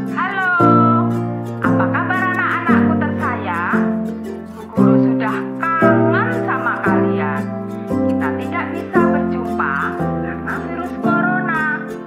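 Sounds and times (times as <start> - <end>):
acoustic guitar chords: 0.0 - 12.0
high voice singing: 0.0 - 12.0.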